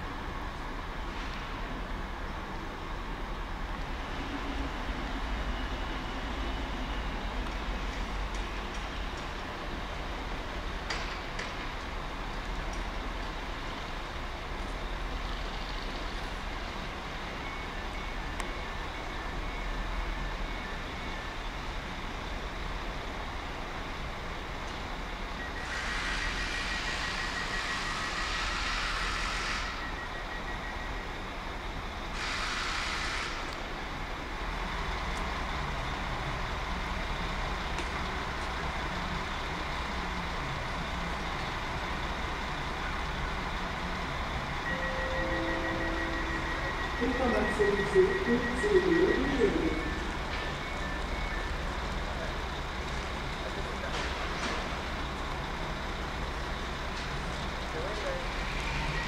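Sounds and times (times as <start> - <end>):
low rumble of trains: 0.0 - 59.0
rapid pulsing beep: 44.6 - 51.8.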